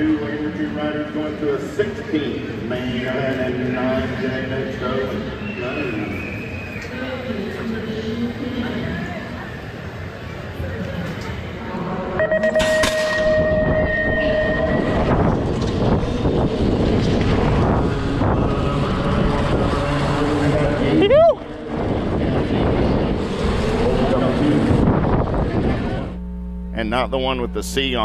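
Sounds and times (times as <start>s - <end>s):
held tone: 12.2s - 15.5s
rising and falling tone: 12.2s - 21.8s
wind rushing over camera: 14.7s - 26.2s.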